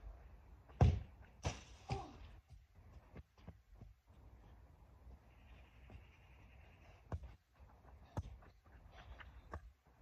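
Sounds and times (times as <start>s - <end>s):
football thud: 0.7s - 2.0s
ball thumps on lawn: 0.7s - 2.1s.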